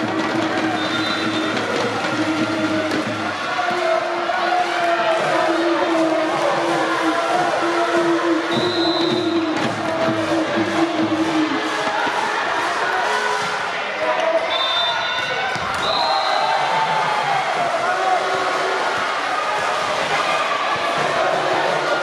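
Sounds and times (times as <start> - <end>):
crowd cheering and calling out: 0.0 - 22.0
short high whistle blasts: 0.8 - 1.5, 14.4 - 15.2.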